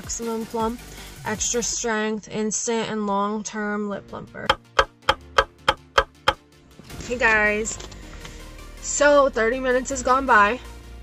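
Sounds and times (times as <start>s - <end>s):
faint background music: 0.0s - 11.0s
clock ticking: 4.4s - 6.4s.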